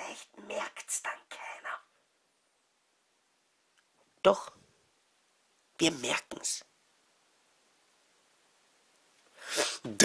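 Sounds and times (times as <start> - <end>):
man speaking: 5.8 - 6.7, 9.8 - 10.0
sharp intake of breath: 9.4 - 9.9.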